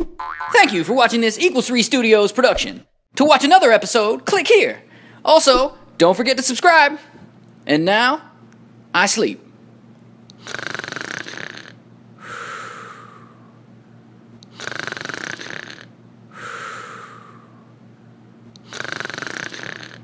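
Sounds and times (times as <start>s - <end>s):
man snoring: 10.4s - 13.5s, 14.5s - 17.7s, 18.6s - 20.0s.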